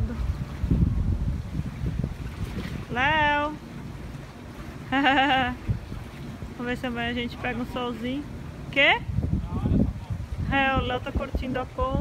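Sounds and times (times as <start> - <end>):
wind blowing on microphone: 0.0 - 12.0.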